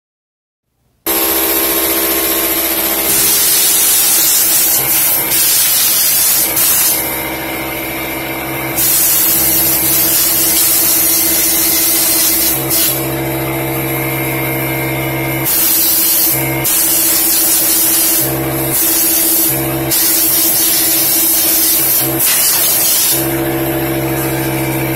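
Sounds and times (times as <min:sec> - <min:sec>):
steady multi-pitched hum: 0:01.1 - 0:24.9
compressed air hissing from nozzle: 0:03.0 - 0:07.1, 0:08.8 - 0:13.1, 0:15.4 - 0:23.3.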